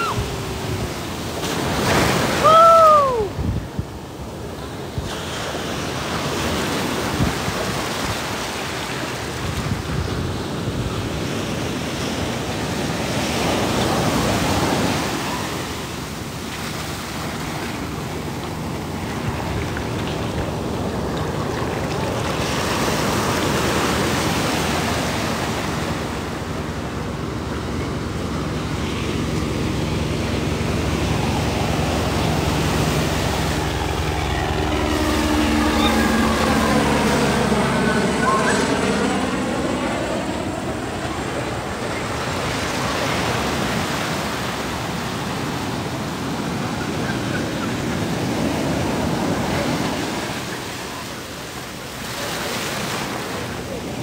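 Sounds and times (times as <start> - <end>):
helicopter engine and rotor hum: 0.0 - 1.8, 2.4 - 54.0
surf washing over sand: 0.0 - 40.3, 40.9 - 54.0.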